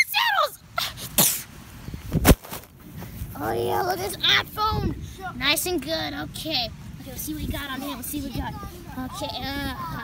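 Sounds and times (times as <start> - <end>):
child yelling: 0.0 - 0.6, 7.8 - 10.0.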